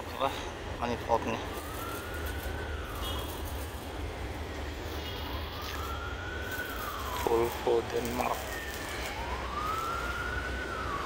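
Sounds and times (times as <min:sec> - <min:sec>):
wailing siren: 0:00.0 - 0:11.0.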